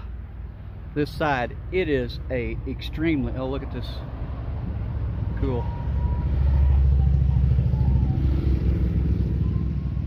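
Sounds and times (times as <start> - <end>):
motorcycle engine drone: 5.3 - 10.0.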